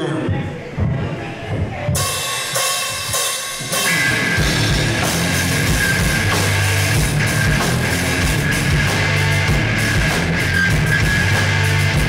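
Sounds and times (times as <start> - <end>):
drums and cymbals: 0.7 - 12.0
distorted electric guitars: 1.6 - 12.0
bass guitar: 2.0 - 12.0.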